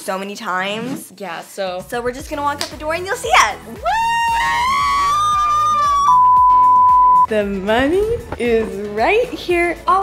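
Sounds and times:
girl shouting woo: 0:03.3 - 0:06.2.

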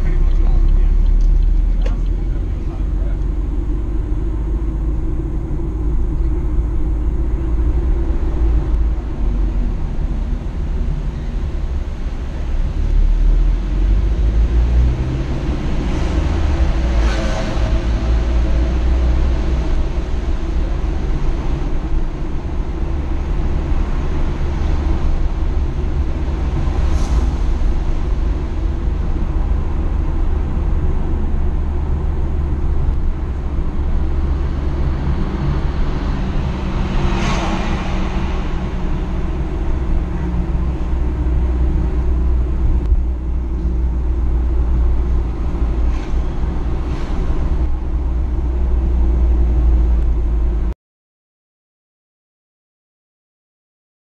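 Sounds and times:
car interior road rumble: 0:00.0 - 0:50.7
passing vehicle: 0:00.0 - 0:50.7.

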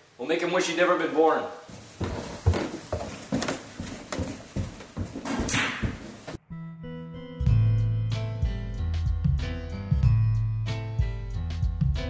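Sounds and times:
footsteps down stairs: 0:01.7 - 0:06.4
music with heavy bass: 0:07.4 - 0:12.0.

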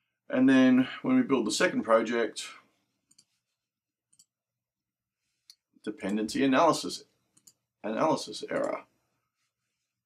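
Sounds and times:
computer mouse clicks: 0:03.0 - 0:03.4, 0:07.3 - 0:07.6, 0:08.5 - 0:08.8.

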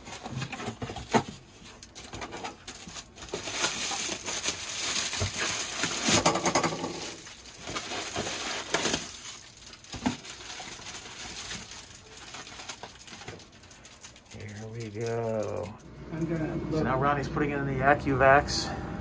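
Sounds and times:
bubble wrap crinkling: 0:00.0 - 0:15.8.

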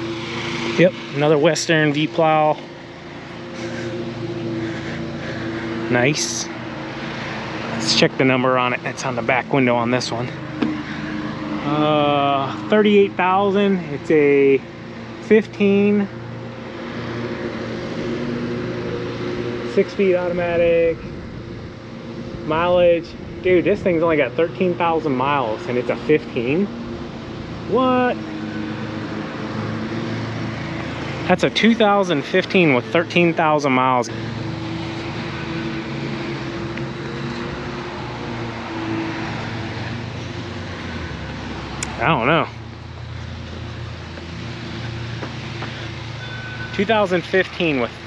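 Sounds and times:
constant rushing noise: 0:00.0 - 0:48.0
lawn mower engines droning: 0:00.0 - 0:48.0
low motor hum: 0:00.0 - 0:48.0.

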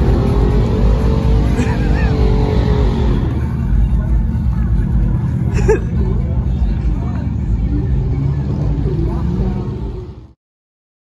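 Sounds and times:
car engine running: 0:00.0 - 0:10.3
faint crowd voices: 0:02.8 - 0:10.4.

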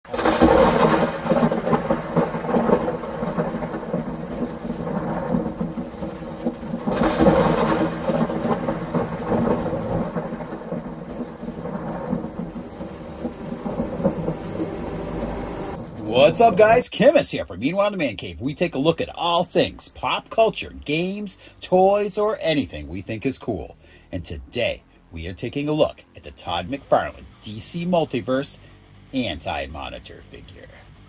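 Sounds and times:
thunder rolling: 0:00.0 - 0:23.0
steady rain: 0:00.0 - 0:24.0
low drone: 0:00.1 - 0:16.8.

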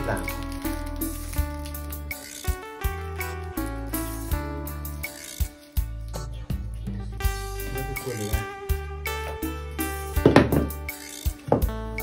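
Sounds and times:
background music with steady tones: 0:00.0 - 0:12.0
wooden mould knocks: 0:10.2 - 0:10.8.

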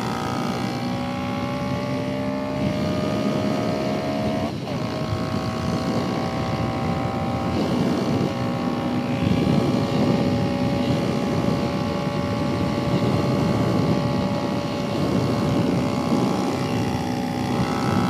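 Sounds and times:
motorcycle engine revving under load: 0:00.0 - 0:18.0
wind noise on microphone: 0:00.0 - 0:18.0.

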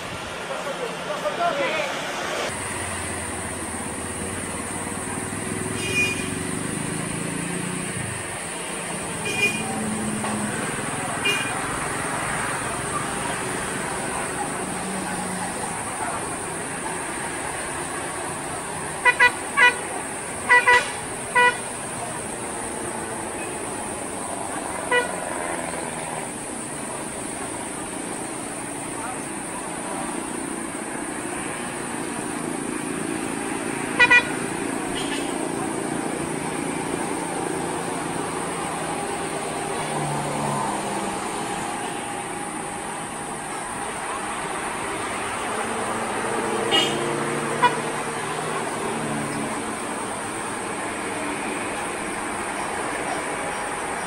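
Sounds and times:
traffic noise: 0:00.0 - 0:54.0
vehicle horns tooting: 0:05.6 - 0:06.6, 0:09.2 - 0:09.9, 0:11.2 - 0:11.6, 0:19.0 - 0:21.8, 0:24.8 - 0:25.4, 0:33.9 - 0:35.4, 0:46.6 - 0:48.0.

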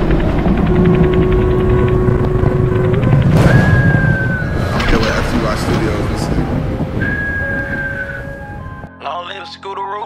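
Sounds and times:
deep rumble: 0:00.0 - 0:08.9
held low tone: 0:00.0 - 0:08.9
higher tone sliding downward: 0:00.0 - 0:08.9
swell of noise: 0:00.0 - 0:08.9.

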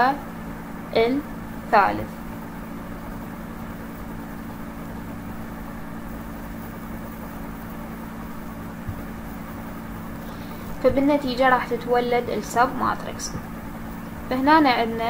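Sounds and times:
low background hum: 0:00.0 - 0:15.0.

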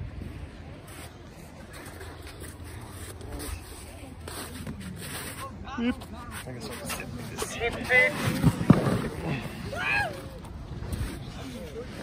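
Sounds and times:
wind rumble on microphone: 0:00.0 - 0:01.6
faint scraping and rustling: 0:00.7 - 0:12.0.

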